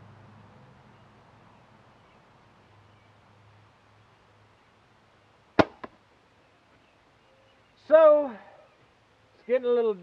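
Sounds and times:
arrow striking target: 0:05.6 - 0:06.0.

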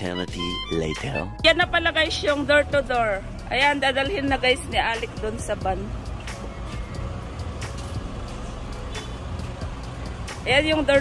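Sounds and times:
street noise: 0:00.0 - 0:11.0
vehicle engine running: 0:01.5 - 0:11.0.

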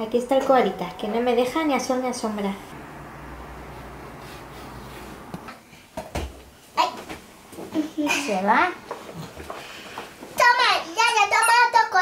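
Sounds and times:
steady low hum: 0:00.8 - 0:05.6.

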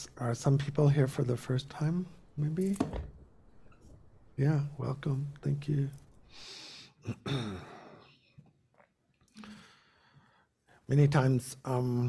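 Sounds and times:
person sighing: 0:06.3 - 0:08.1, 0:09.3 - 0:10.0.

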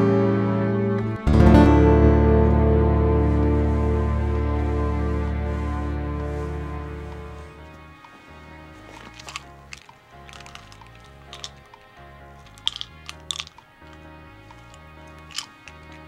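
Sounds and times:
low slow soundtrack music: 0:00.0 - 0:16.0
pill bottle clicks and rattles: 0:08.8 - 0:16.0.

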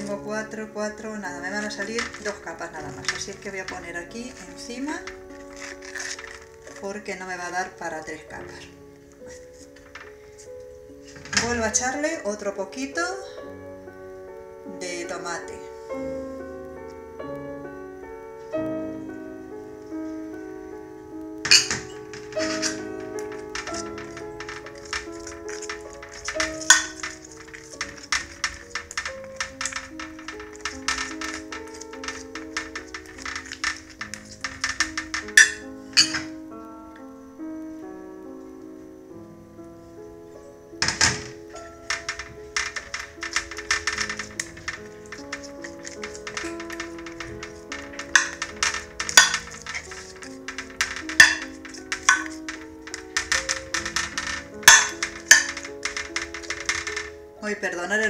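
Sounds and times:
background music: 0:00.0 - 0:58.0
dish clattering on metal tray: 0:01.6 - 0:06.8, 0:11.1 - 0:11.8, 0:21.5 - 0:36.4, 0:40.8 - 0:57.1
spoon scraping glass dish: 0:21.5 - 0:36.3, 0:42.9 - 0:55.6.

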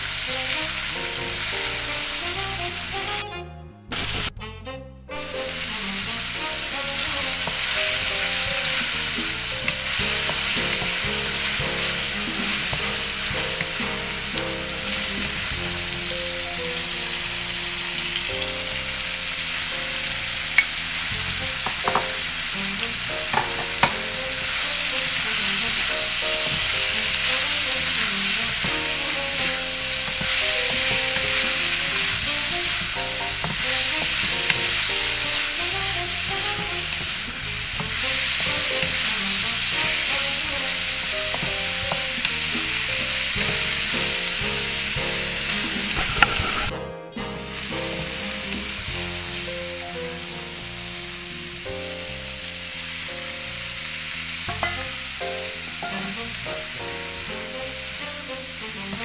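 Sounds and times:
meat sizzling in a wok: 0:00.0 - 0:03.2, 0:04.0 - 0:04.3, 0:05.2 - 0:46.7, 0:47.4 - 0:59.0
spatula knocking on wok: 0:07.2 - 0:15.7, 0:21.5 - 0:22.3, 0:23.3 - 0:24.6, 0:25.8 - 0:27.9, 0:28.6 - 0:46.6, 0:54.5 - 0:55.0.

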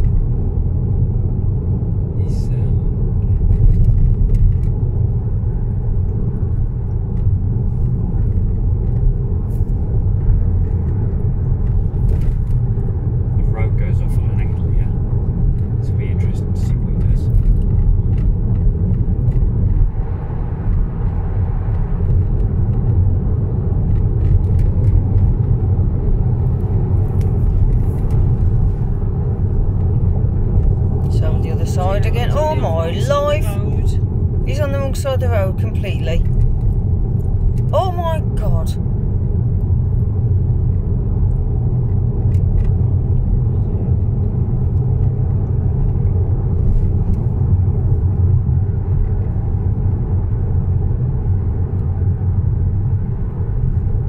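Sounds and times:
car engine and tyres rumbling: 0:00.0 - 0:54.0.

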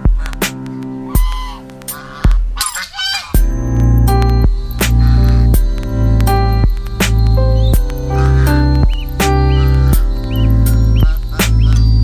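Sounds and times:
goose honking: 0:00.0 - 0:03.4, 0:04.8 - 0:05.6, 0:08.0 - 0:12.0
background music with bass: 0:00.0 - 0:12.0.

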